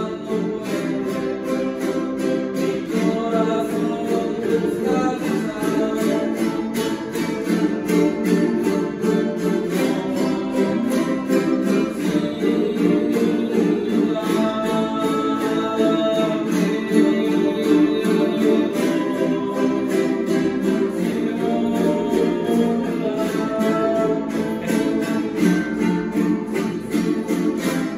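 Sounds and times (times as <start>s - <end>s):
small guitars strummed rapidly: 0.0s - 27.9s.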